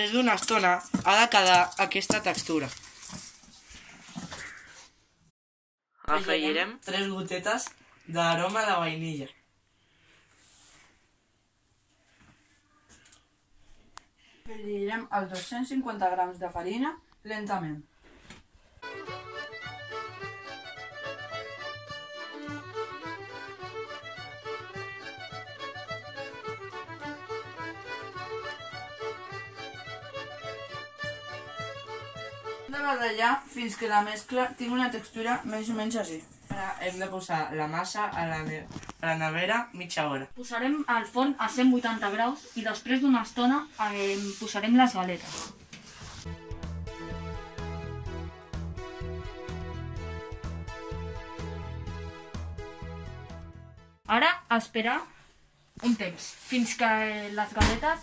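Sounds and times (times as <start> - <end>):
instrumental tune over a beat: 18.8 - 33.3, 46.2 - 54.0.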